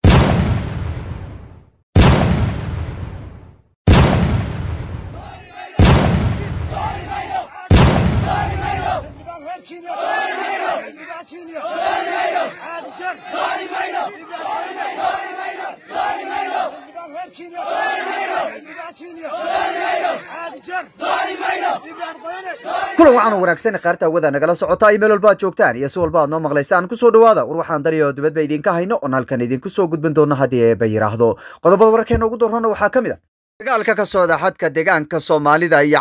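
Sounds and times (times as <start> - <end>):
heavy booms: 0.0 - 9.2
crowd chanting: 5.1 - 23.2.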